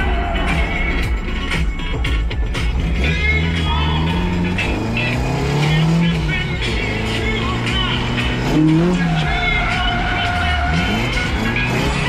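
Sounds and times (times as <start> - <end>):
car engine revving: 0.0 - 12.0
music: 0.0 - 12.0.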